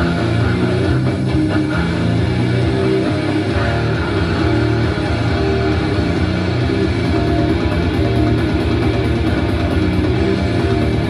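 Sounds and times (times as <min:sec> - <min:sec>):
live heavy metal through pa: 0:00.0 - 0:11.0.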